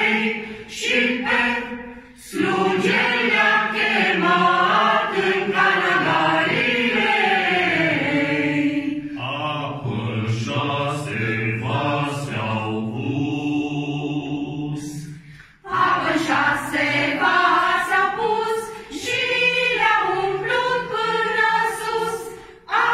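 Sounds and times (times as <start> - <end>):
group singing a carol: 0.0 - 22.9.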